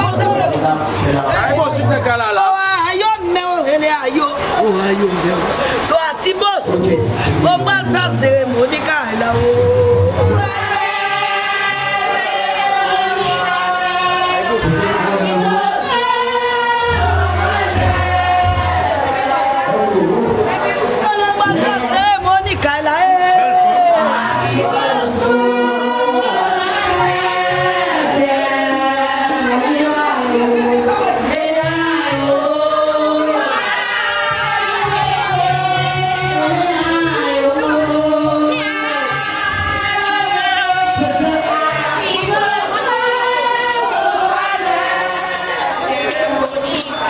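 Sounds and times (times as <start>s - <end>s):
steady low beat: 6.7s - 20.6s
group chanting in held notes: 9.3s - 22.1s, 23.1s - 47.0s.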